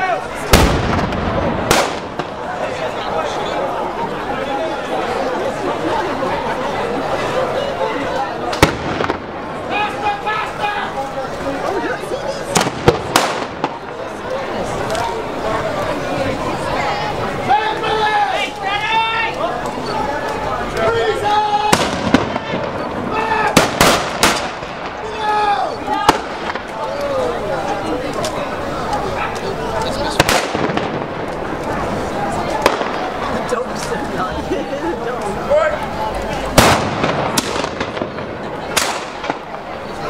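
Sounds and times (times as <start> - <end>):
crowd chatter: 0.0 - 40.0
loud blank gunshot: 0.5 - 2.3, 23.6 - 24.6, 36.6 - 39.4
musket shots: 0.5 - 2.3, 23.6 - 24.7, 36.6 - 39.4.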